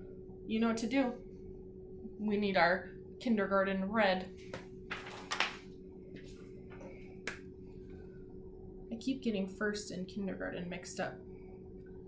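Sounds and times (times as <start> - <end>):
faint steady hum: 0.0 - 12.0
magazine pages rustling: 4.9 - 6.4.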